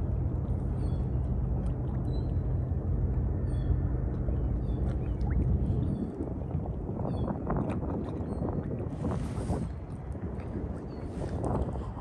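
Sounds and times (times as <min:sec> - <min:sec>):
wind noise on microphone: 0:00.0 - 0:02.7, 0:03.5 - 0:12.0
steady low rumble: 0:00.0 - 0:12.0.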